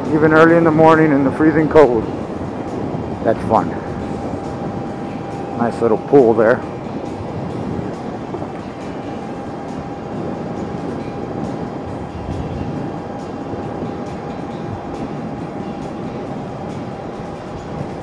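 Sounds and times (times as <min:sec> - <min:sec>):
wind and road noise: 0:00.0 - 0:18.0.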